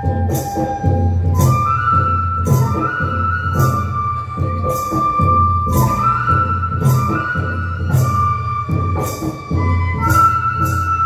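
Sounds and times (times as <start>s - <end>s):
drum and cymbal beat: 0.0s - 11.0s
flute playing held notes: 0.0s - 11.0s.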